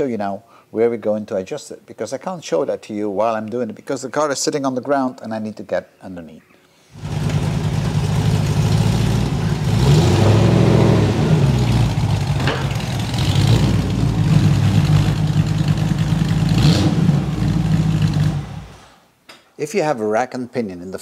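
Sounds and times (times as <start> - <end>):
car engine idling with throttle blips: 7.0 - 18.8.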